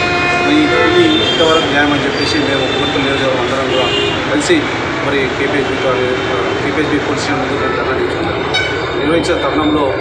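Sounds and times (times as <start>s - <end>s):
sustained horn-like tone: 0.0s - 4.3s
loud background noise: 0.0s - 10.0s
man's voice: 0.4s - 10.0s.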